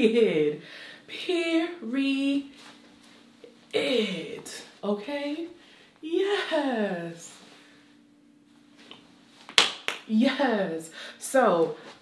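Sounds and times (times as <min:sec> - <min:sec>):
sharp hand smacks: 0:08.9 - 0:10.1.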